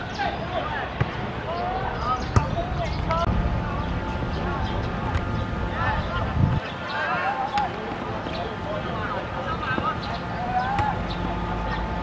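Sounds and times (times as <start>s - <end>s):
players shouting: 0.0s - 12.0s
football kick thuds: 5.0s - 5.4s.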